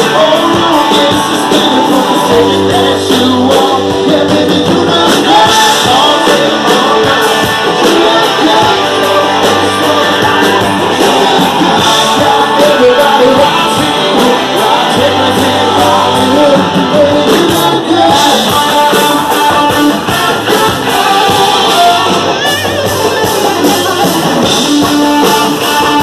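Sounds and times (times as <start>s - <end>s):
drums: 0.0s - 26.0s
electric guitars: 0.0s - 26.0s
person singing: 0.0s - 26.0s.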